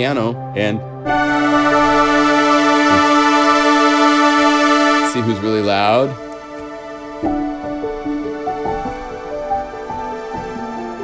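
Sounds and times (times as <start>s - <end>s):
sustained orchestral synth chord: 1.0s - 11.0s.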